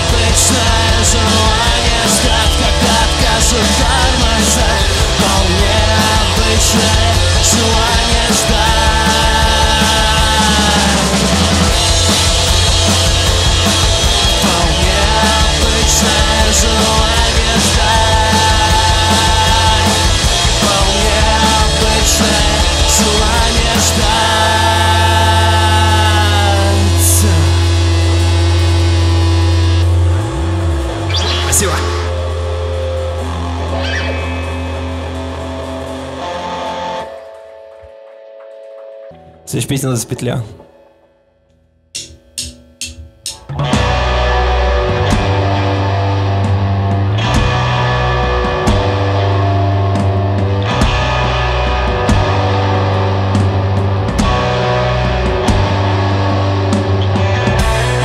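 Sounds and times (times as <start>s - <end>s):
rock band sustained chord: 0.0s - 38.1s, 43.3s - 58.0s.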